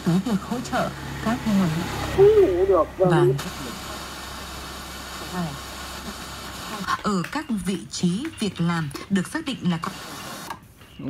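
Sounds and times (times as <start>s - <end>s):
radio static hiss: 1.9s - 11.0s.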